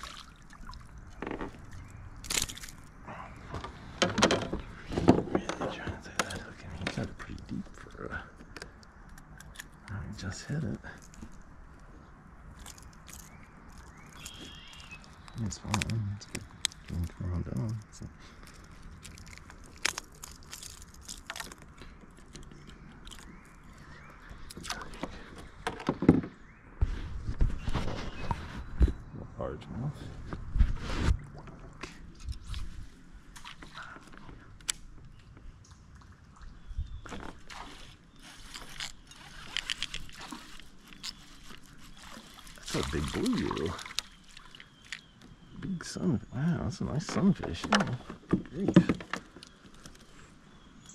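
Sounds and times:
fishing tackle clicks and knocks: 0:03.5 - 0:07.5, 0:24.6 - 0:26.3.

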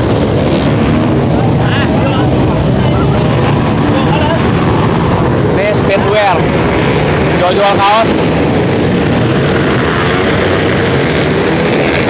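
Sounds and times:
engine drone: 0:00.0 - 0:12.0
voices talking: 0:00.9 - 0:08.7.

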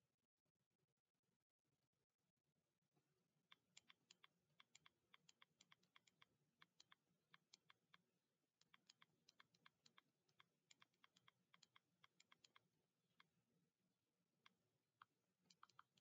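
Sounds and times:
typing on computer keyboard: 0:03.5 - 0:08.0, 0:08.6 - 0:12.6, 0:15.0 - 0:16.0.

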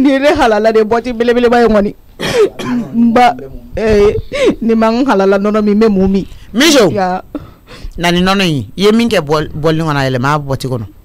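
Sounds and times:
person coughing: 0:02.2 - 0:03.1.

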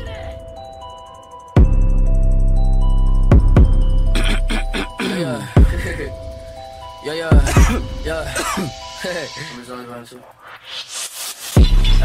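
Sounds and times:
bell-like synth notes: 0:00.0 - 0:10.0
deep bass hit: 0:03.1 - 0:04.8.

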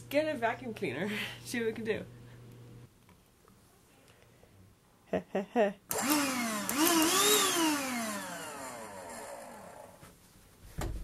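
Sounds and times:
handheld vacuum motor whining: 0:05.9 - 0:10.0.

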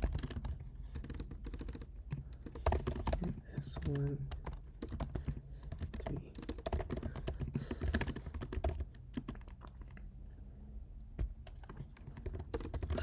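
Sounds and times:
fast typing on computer keyboard: 0:00.0 - 0:09.8, 0:11.4 - 0:13.0.

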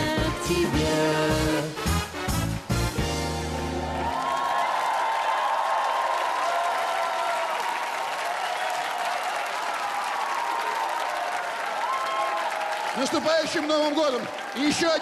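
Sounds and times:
studio audience applauding: 0:00.4 - 0:15.0.

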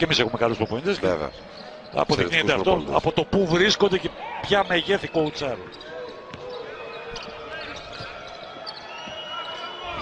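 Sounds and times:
murmur of arena crowd: 0:00.0 - 0:10.0.

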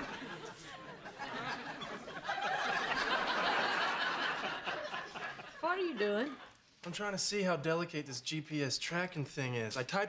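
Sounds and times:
studio audience laughter: 0:00.0 - 0:06.6
man talking: 0:06.8 - 0:10.0.

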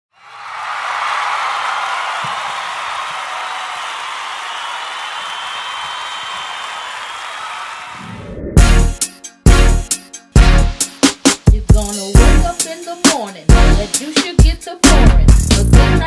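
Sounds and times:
crowd cheering and clapping: 0:00.1 - 0:08.9.

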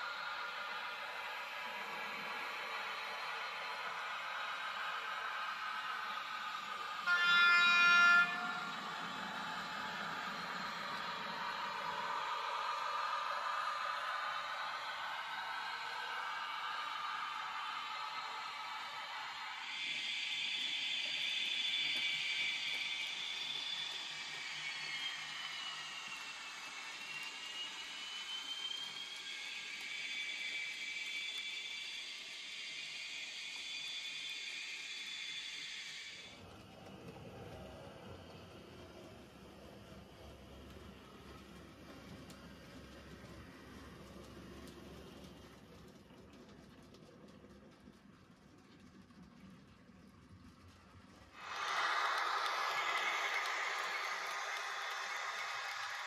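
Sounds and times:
model train wheels rolling on track: 0:00.0 - 0:56.0
horn-like tone: 0:07.0 - 0:09.0.

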